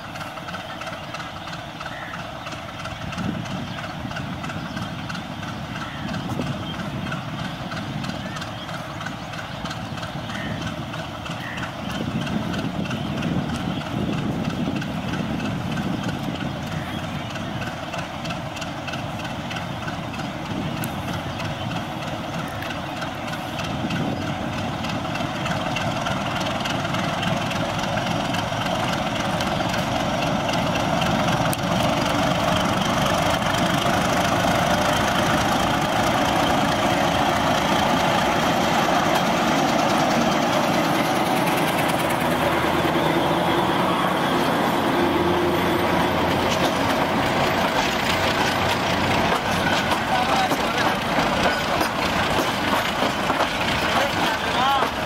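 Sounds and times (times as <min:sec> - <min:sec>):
diesel locomotive engine running: 0:00.0 - 0:55.0.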